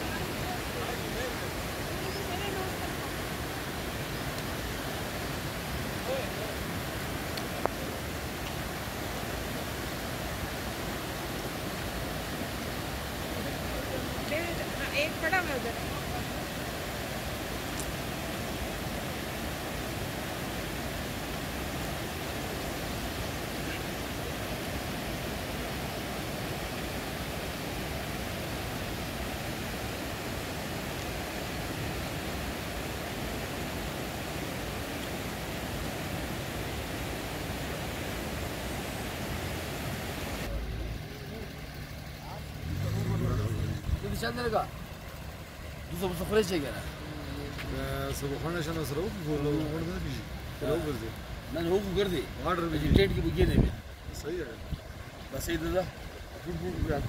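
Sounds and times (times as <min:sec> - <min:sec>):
steady rushing noise: 0:00.0 - 0:57.0.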